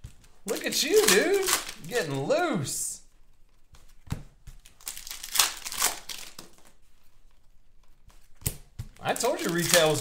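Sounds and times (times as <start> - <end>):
plastic wrapper crinkling: 0.0 - 2.4, 4.5 - 7.5, 8.1 - 10.0.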